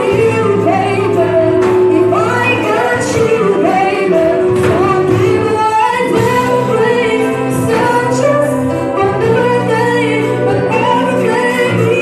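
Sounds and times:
sustained keyboard and bass: 0:00.0 - 0:12.0
woman singing ballad: 0:00.0 - 0:12.0.

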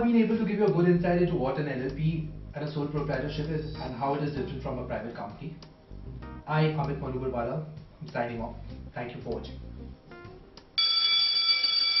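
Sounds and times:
faint background music: 0:00.0 - 0:10.8
school bell ringing: 0:10.8 - 0:12.0.

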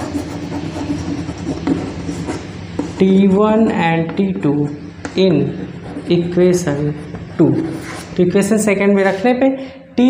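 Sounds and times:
chalk tapping and scratching: 0:00.0 - 0:03.3, 0:05.0 - 0:08.2
steady background hum: 0:00.0 - 0:10.0.

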